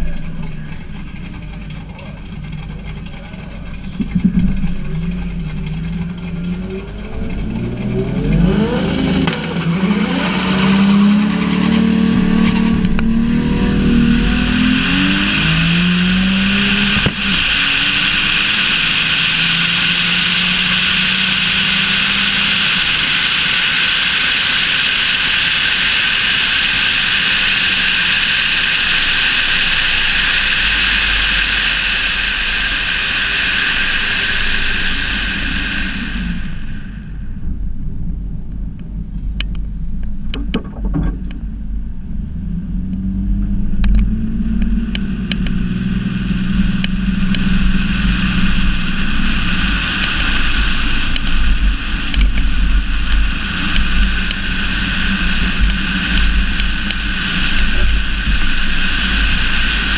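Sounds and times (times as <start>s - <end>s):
car engine accelerating hard: 0.0s - 59.9s.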